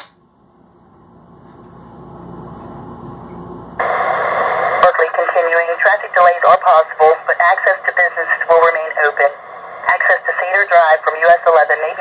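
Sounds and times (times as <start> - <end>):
radio static hiss burst: 3.8 - 12.0.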